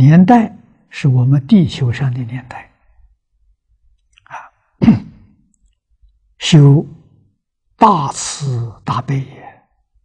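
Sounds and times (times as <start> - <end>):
elderly man lecturing: 0.0 - 2.8, 6.4 - 7.2, 7.8 - 9.7.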